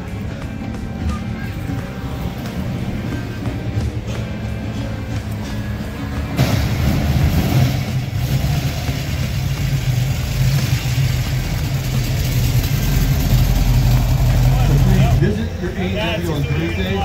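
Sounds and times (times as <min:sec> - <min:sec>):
car engines rumbling: 0:00.0 - 0:17.0.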